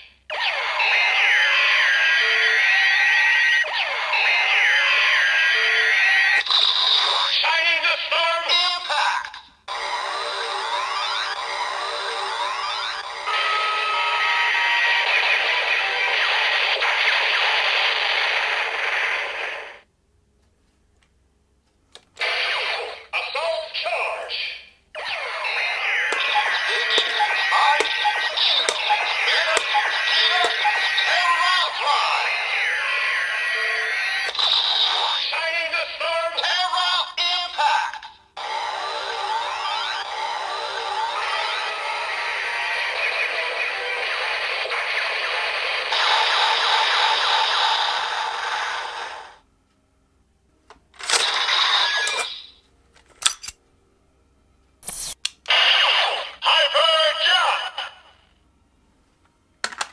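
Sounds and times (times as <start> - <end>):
toy electronic music and effects: 0.4 - 7.4, 9.7 - 17.0, 25.0 - 35.6, 38.4 - 48.9.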